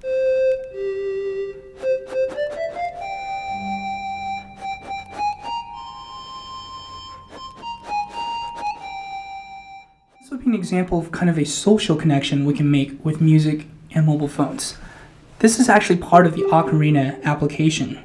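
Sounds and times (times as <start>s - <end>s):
synthesized flute-like melody: 0.0s - 10.0s, 16.2s - 17.9s
low synth tone: 3.4s - 5.8s.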